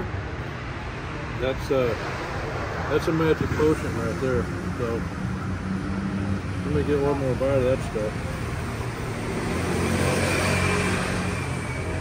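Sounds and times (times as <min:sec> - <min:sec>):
street traffic: 0:00.0 - 0:12.0
vehicle passing: 0:01.9 - 0:12.0.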